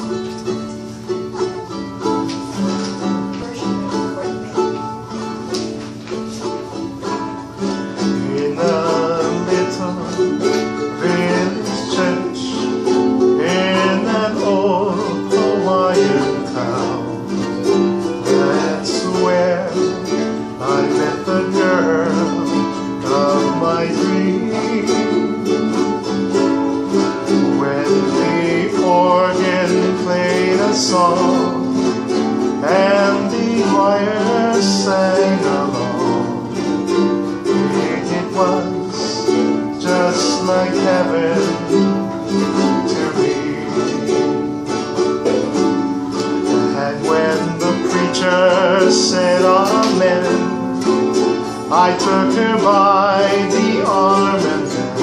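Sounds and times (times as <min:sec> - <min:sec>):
ukulele strumming: 0:00.0 - 0:55.0
person singing: 0:06.2 - 0:55.0.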